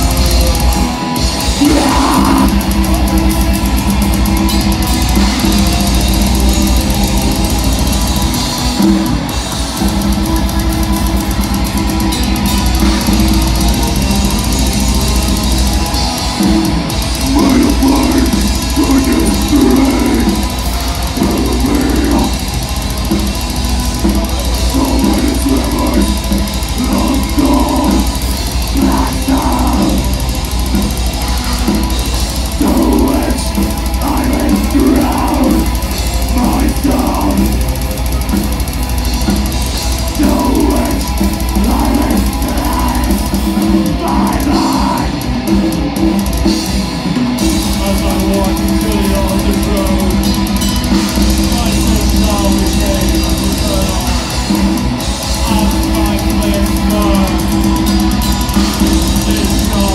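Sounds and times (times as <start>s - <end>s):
bass guitar: 0.0s - 59.9s
drum kit: 0.0s - 59.9s
electric guitar: 0.0s - 59.9s.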